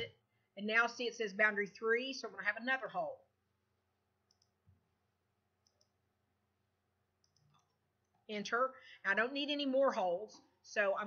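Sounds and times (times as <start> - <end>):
faint computer mouse clicks: 4.3 - 4.6, 5.6 - 6.0, 7.2 - 7.8.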